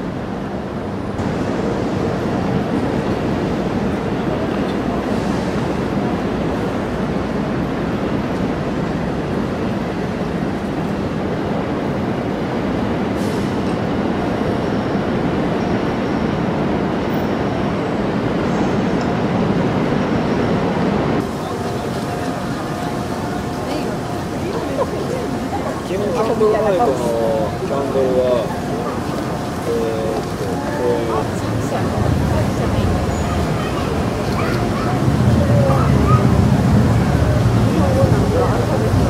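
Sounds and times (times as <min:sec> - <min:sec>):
traffic noise: 0:00.0 - 0:39.0
crowd murmur: 0:21.2 - 0:39.0.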